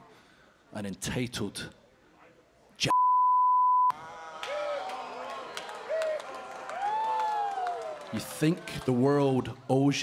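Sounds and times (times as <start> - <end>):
censor bleep tone: 2.9 - 3.9.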